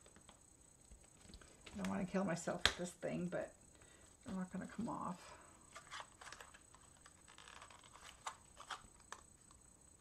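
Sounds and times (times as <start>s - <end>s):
paper rustling: 5.7s - 9.2s.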